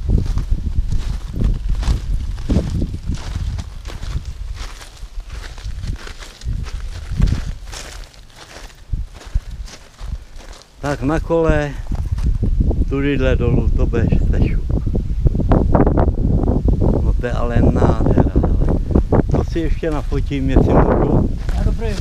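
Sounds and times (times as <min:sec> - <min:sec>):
footsteps on gravel: 0:00.0 - 0:11.2, 0:19.3 - 0:20.3, 0:21.2 - 0:22.0
low rumble on microphone: 0:00.0 - 0:22.0.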